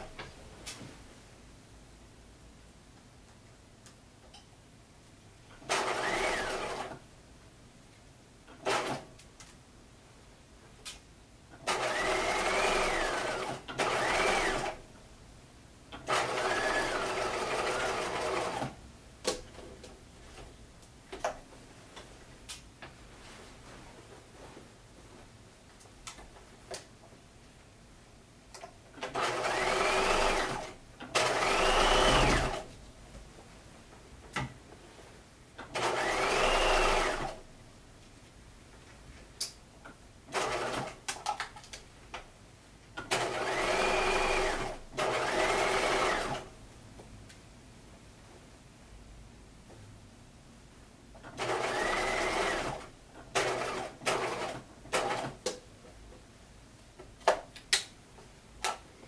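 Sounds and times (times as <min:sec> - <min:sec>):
sewing machine stitching: 0:05.6 - 0:07.0, 0:08.5 - 0:09.1, 0:11.6 - 0:14.8, 0:16.0 - 0:18.8, 0:29.0 - 0:32.7, 0:35.6 - 0:37.4, 0:40.3 - 0:41.1, 0:43.0 - 0:46.5, 0:51.2 - 0:55.4
fabric handling: 0:22.9 - 0:25.4.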